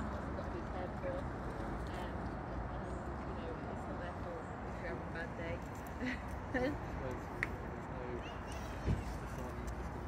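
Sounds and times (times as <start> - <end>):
faint conversation: 0.0 - 10.0
steady background noise: 0.0 - 10.0.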